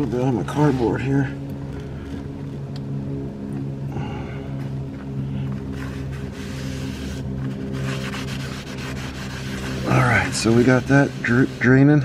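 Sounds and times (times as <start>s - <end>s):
motor humming: 0.0s - 12.0s.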